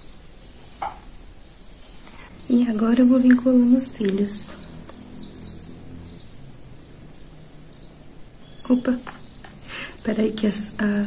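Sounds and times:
bird chirps: 0:00.0 - 0:09.9.

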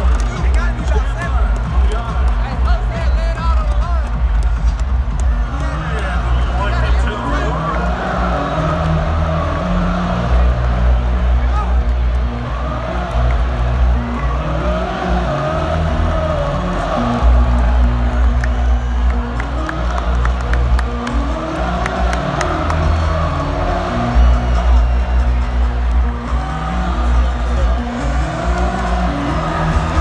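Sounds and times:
crowd cheering: 0:00.0 - 0:30.0.

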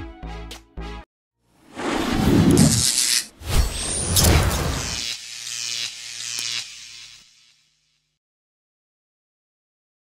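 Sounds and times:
electric buzzing: 0:02.3 - 0:08.2.

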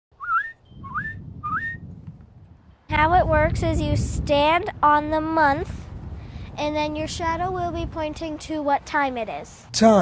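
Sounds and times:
upward sliding whistled notes: 0:00.2 - 0:01.9.

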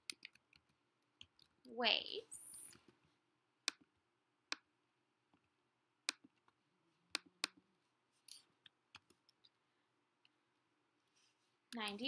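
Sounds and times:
computer mouse clicks: 0:00.0 - 0:01.5.

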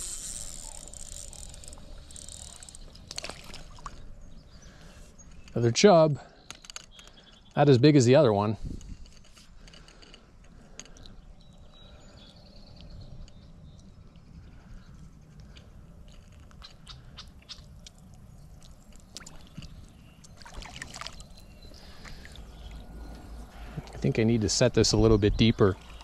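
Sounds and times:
fishing tackle clicks and rustles: 0:00.0 - 0:04.2, 0:05.0 - 0:05.8, 0:06.4 - 0:08.0, 0:08.6 - 0:11.6, 0:12.8 - 0:24.2.

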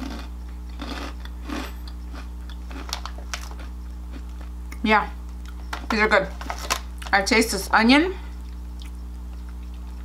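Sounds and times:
person chewing snack: 0:00.0 - 0:04.8, 0:08.4 - 0:10.0
steady low hum: 0:00.0 - 0:10.0.

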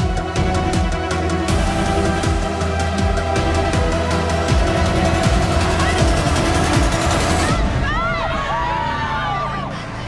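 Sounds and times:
electronic music with steady beat: 0:00.0 - 0:07.6
young women shouting and screaming: 0:07.5 - 0:10.0.

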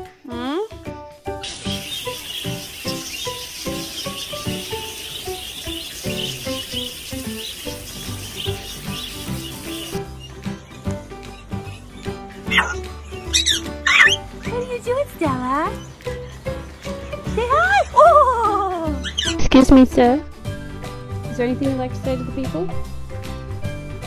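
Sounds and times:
background music: 0:00.0 - 0:24.0
bird swooping calls: 0:01.4 - 0:14.8, 0:18.9 - 0:19.4
budgerigars chattering and chirping: 0:01.4 - 0:14.8, 0:15.7 - 0:17.3, 0:19.0 - 0:19.4.

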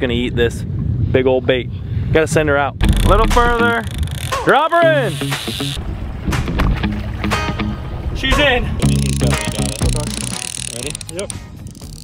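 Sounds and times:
background music with bass notes: 0:02.8 - 0:12.0.

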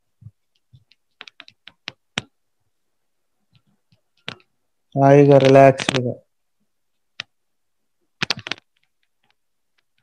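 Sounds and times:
sharp clicks: 0:05.3 - 0:06.1, 0:08.2 - 0:10.0.

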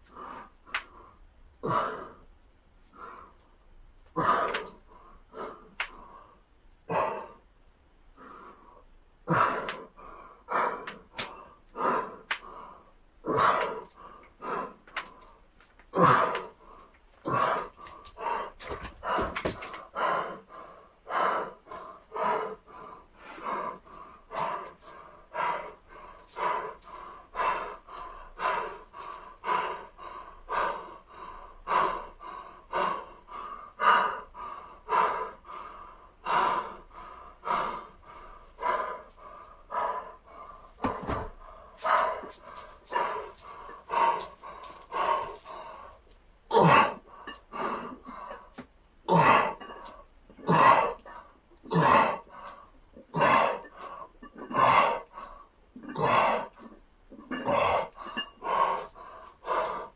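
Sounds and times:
man breathing hard: 0:00.0 - 0:07.5, 0:08.1 - 0:59.9.

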